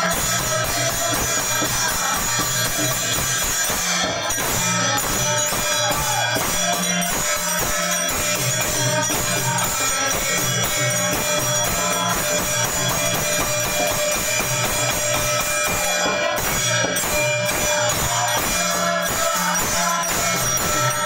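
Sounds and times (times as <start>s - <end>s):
hand cymbals clashing: 0.0s - 21.0s
pulsing drum beat: 0.0s - 21.0s.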